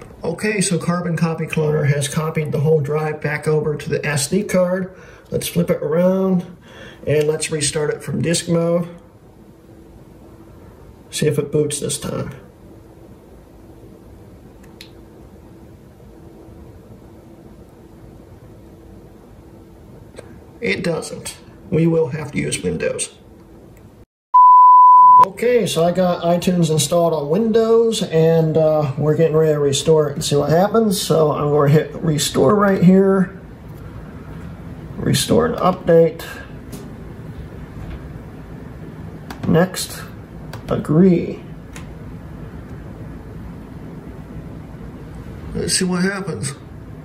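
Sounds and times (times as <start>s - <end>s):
low room noise rumble: 0.0s - 24.0s, 24.8s - 47.0s
faint steady hum: 0.0s - 47.0s
small click: 14.6s - 15.0s.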